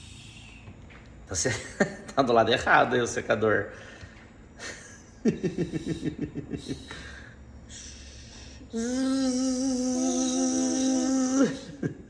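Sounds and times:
person humming a buzzing note: 0:08.7 - 0:11.9.

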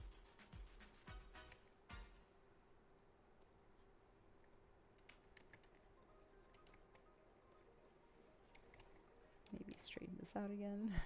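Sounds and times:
faint steady hum: 0:00.0 - 0:11.0
computer keys clicking: 0:04.9 - 0:07.7, 0:08.4 - 0:10.0
person speaking: 0:09.2 - 0:11.0.

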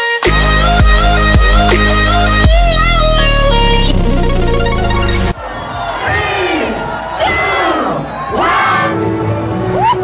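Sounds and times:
crowd yelling and screaming: 0:05.3 - 0:10.0
people shouting: 0:05.4 - 0:10.0.

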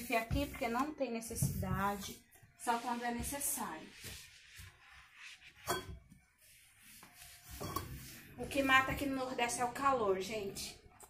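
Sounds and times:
cloth rubbing furniture: 0:01.4 - 0:05.7, 0:06.3 - 0:09.0.

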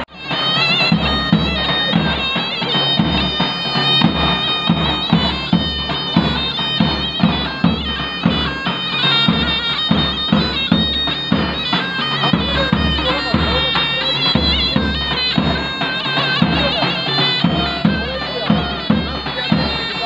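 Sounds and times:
shawm playing nasal folk melody: 0:00.0 - 0:20.0.

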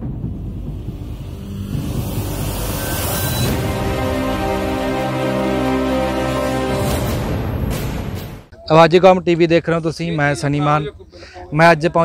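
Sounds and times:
low steady rumbling: 0:00.0 - 0:05.0.

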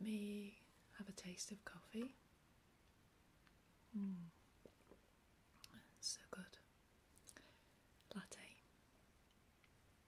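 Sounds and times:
woman whispering: 0:00.0 - 0:02.2, 0:05.6 - 0:06.7, 0:08.1 - 0:08.7.

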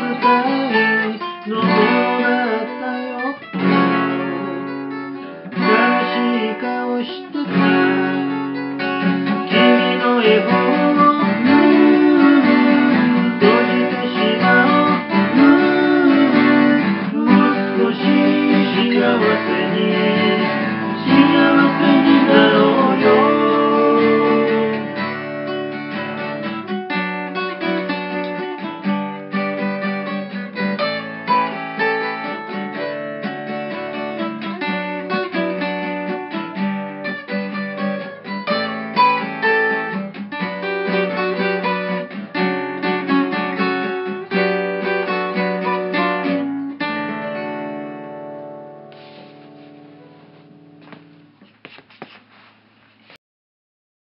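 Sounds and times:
person singing: 0:00.0 - 0:08.6, 0:09.2 - 0:25.2
acoustic guitar strumming: 0:00.0 - 0:52.1.

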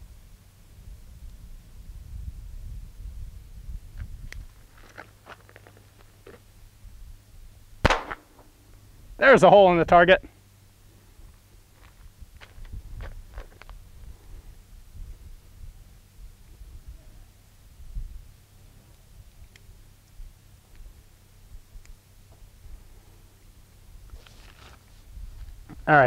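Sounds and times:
wind rumble on microphone: 0:00.0 - 0:04.9, 0:06.6 - 0:07.9, 0:11.1 - 0:23.2, 0:23.8 - 0:26.0.

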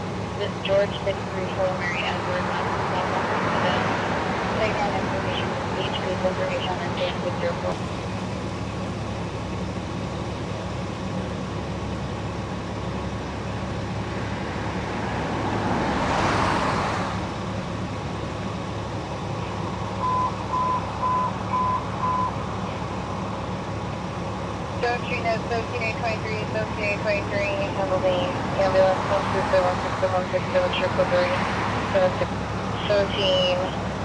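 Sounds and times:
idling vehicle engines hum: 0:00.0 - 0:34.0
quick beeps: 0:20.0 - 0:22.4.

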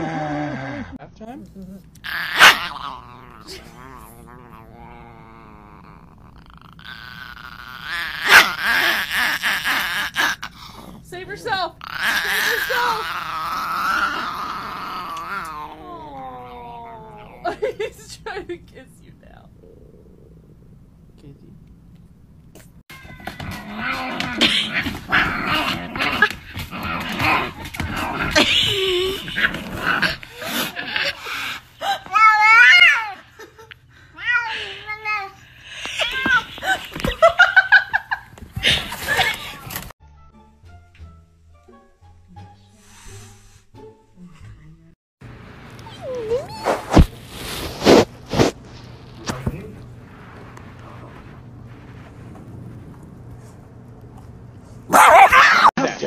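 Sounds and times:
small dog growling: 0:02.0 - 0:11.1, 0:11.8 - 0:17.6, 0:19.5 - 0:21.2, 0:23.4 - 0:31.7.

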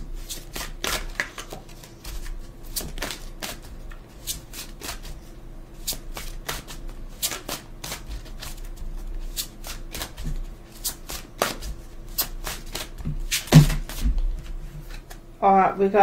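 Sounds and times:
cards being shuffled: 0:00.2 - 0:15.2.

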